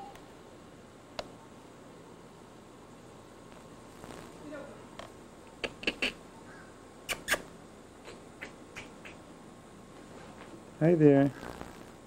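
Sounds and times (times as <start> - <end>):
person making kissing clicks: 5.5 - 6.2, 7.1 - 9.2.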